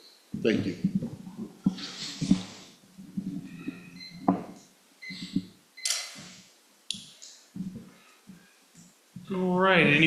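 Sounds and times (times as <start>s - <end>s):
microphone handling knocks: 0.4s - 5.5s, 7.6s - 8.0s.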